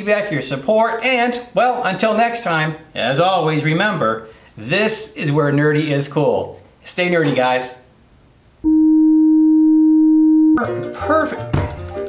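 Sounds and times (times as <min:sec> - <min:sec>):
steady test tone: 0:08.6 - 0:10.7.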